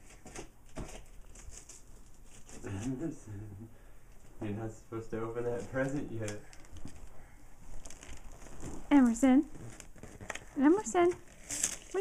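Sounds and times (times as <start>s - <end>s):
gift-wrap paper crinkling: 0.2s - 3.2s, 5.4s - 12.0s
woman speaking: 8.9s - 9.5s, 10.6s - 11.2s.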